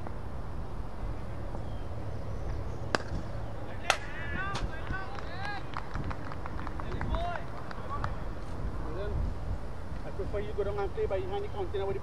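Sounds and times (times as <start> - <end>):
distant shouted calls: 1.1 - 8.9.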